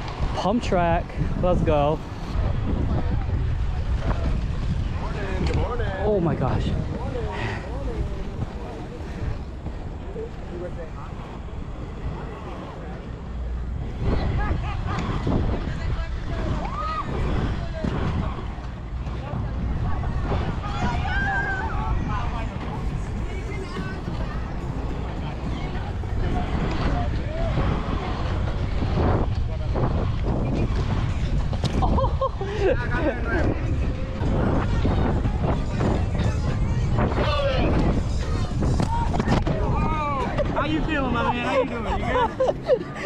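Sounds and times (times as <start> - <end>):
faint voices: 0.0 - 43.0
skate wheels rolling on asphalt: 0.0 - 43.0
wind on microphone: 0.0 - 43.0.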